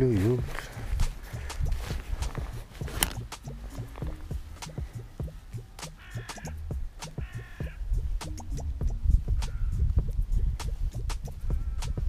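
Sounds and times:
clothing rustling: 0:00.0 - 0:05.1.

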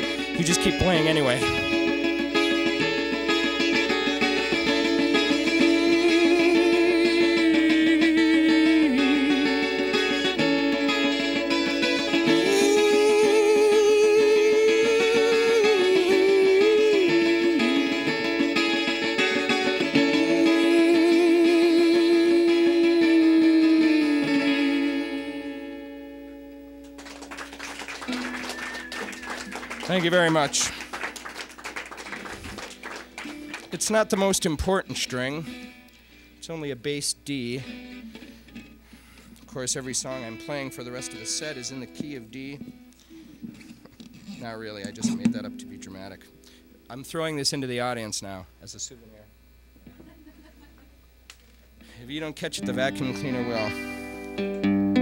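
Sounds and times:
man singing wordless notes: 0:00.0 - 0:02.0, 0:05.2 - 0:11.1, 0:12.2 - 0:18.1, 0:20.0 - 0:25.5
acoustic guitar strumming: 0:00.0 - 0:48.3, 0:51.8 - 0:55.0.

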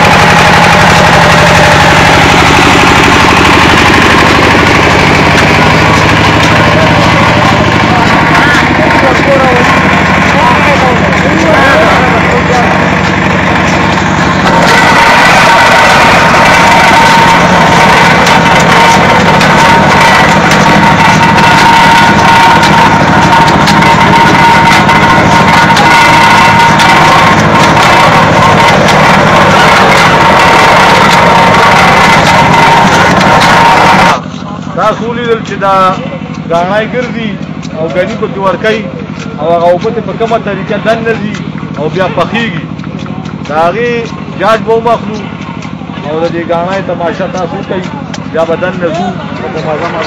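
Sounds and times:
steady high whine: 0:00.0 - 0:50.0
sugarcane crusher engine running: 0:00.0 - 0:50.0.

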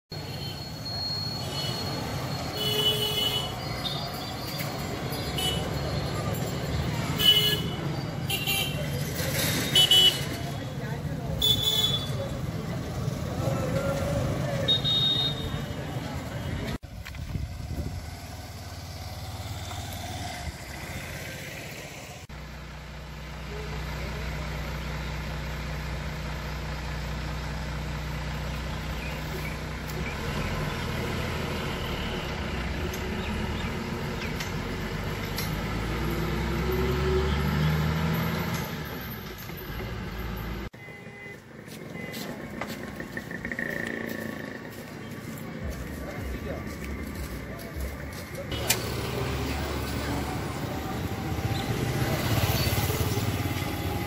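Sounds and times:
passing motorcycles and scooters: 0:00.2 - 0:22.3, 0:23.4 - 0:54.0
motorcycle engine running: 0:42.4 - 0:54.0.

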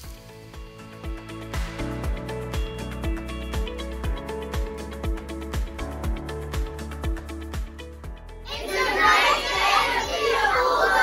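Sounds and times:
background music with steady beat: 0:00.0 - 0:10.0
children cheering and shouting: 0:08.5 - 0:11.0.

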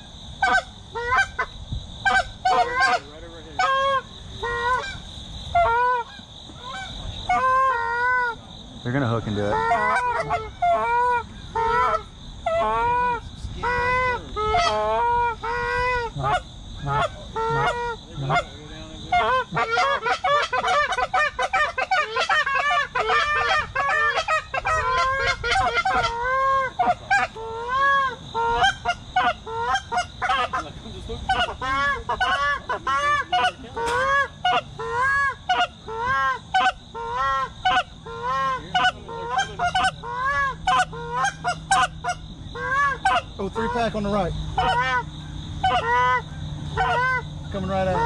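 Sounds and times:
geese honking: 0:00.0 - 0:48.0.

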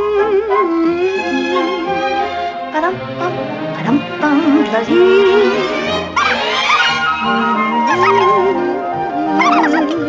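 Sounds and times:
orchestral film music: 0:00.0 - 0:10.0.

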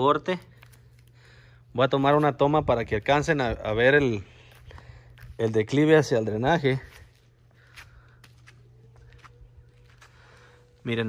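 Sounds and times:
low hum: 0:06.2 - 0:11.0.

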